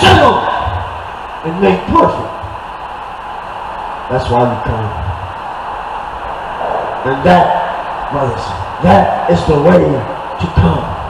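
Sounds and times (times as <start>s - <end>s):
low rumble with hiss: 0.0s - 11.0s.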